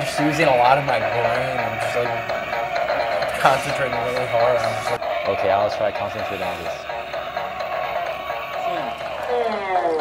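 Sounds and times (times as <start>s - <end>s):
sustained tone music: 0.0s - 10.0s.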